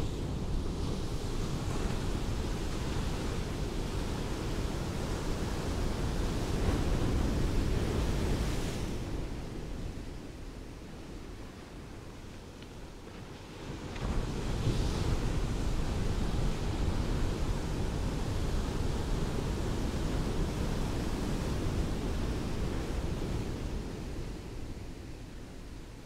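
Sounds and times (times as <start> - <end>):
ocean wave breaking and washing: 0.0 - 26.0.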